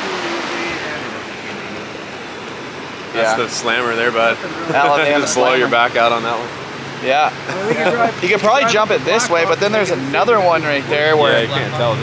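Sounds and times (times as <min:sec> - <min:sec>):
water crashing over boulders: 0:00.0 - 0:07.5
whitewater rapid rushing: 0:00.0 - 0:12.0.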